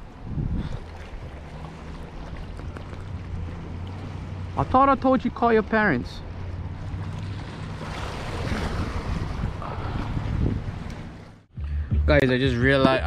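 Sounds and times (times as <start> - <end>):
wind on microphone: 0.0 - 3.8, 6.7 - 11.3
waves washing against rocks: 5.8 - 11.2.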